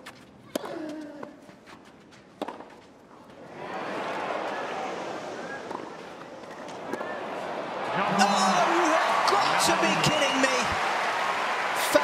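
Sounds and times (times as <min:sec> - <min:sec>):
tennis ball hits: 0:02.4 - 0:02.8
crowd shouting and cheering: 0:03.4 - 0:12.0
crowd clapping: 0:07.4 - 0:12.0.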